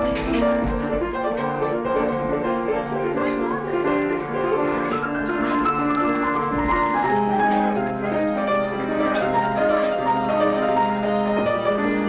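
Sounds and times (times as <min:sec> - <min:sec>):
improvised piano: 0:00.0 - 0:12.0.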